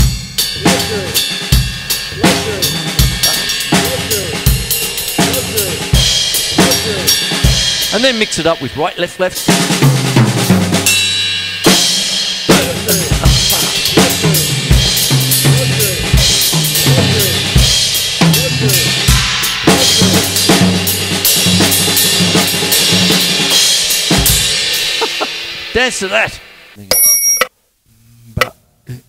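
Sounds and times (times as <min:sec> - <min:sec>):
drum kit reggae groove: 0:00.0 - 0:27.4.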